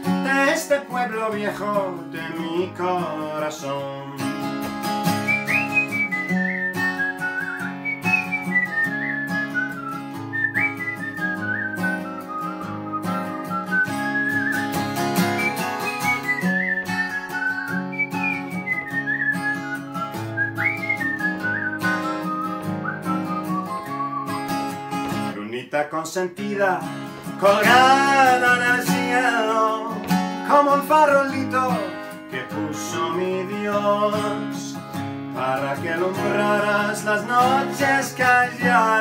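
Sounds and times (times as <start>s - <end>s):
acoustic guitar strummed: 0.0s - 25.4s, 26.4s - 39.0s
whistled melody: 5.0s - 25.2s, 36.2s - 39.0s.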